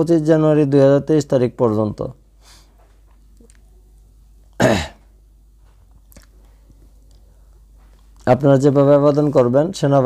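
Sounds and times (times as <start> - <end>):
man clearing throat: 4.5 - 5.1.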